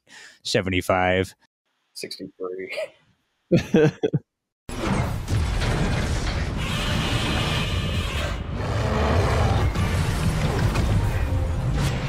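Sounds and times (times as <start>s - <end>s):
mechanical clattering and rumbling: 4.7s - 8.6s
action soundtrack music: 8.5s - 12.0s.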